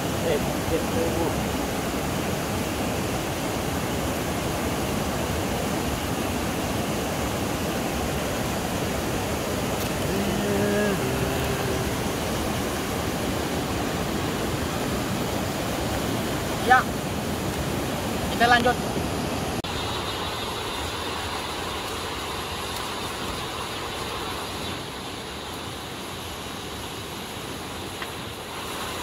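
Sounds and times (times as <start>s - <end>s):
river water rushing over rocks: 0.0s - 29.0s.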